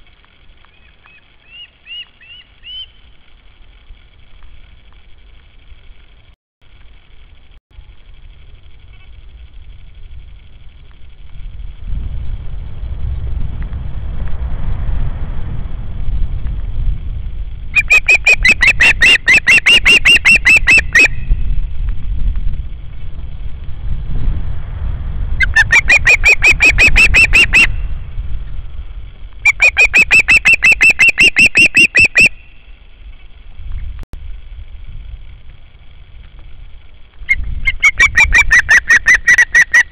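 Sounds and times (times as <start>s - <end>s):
steady low rumble: 0.0s - 39.9s
osprey whistled calls: 0.7s - 3.1s, 17.7s - 21.4s, 25.4s - 27.9s, 29.4s - 33.4s, 37.2s - 39.9s.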